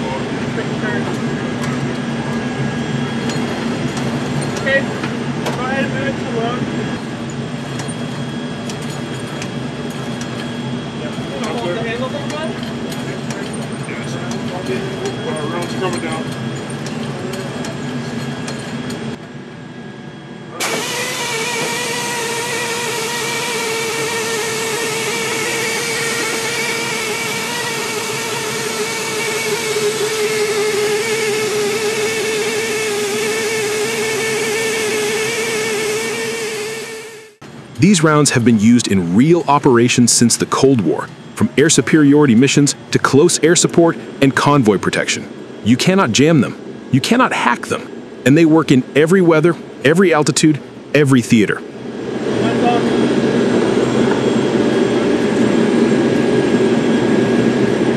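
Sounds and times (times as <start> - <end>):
machinery drone: 0.0 - 57.9
steady pitched whine: 0.0 - 57.9.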